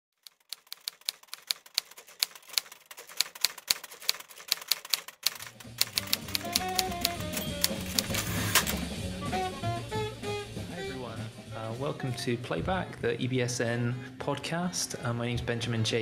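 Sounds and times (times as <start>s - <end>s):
typewriter keys clacking: 0.2s - 8.8s
music with bass notes: 6.0s - 11.8s.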